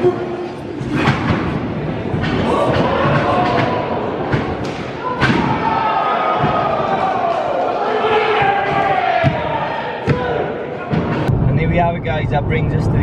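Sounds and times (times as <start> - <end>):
crowd shouting: 2.3 - 11.3.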